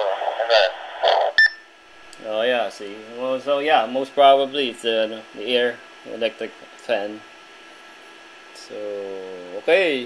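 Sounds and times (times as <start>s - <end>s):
voice over radio speaker: 0.0s - 1.4s
short beep: 1.4s - 1.6s
faint hiss: 2.0s - 10.0s.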